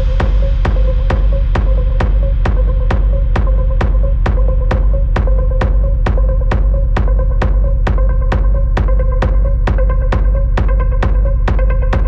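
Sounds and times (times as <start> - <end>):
heavy bass: 0.0 - 12.0
techno music: 0.0 - 12.0.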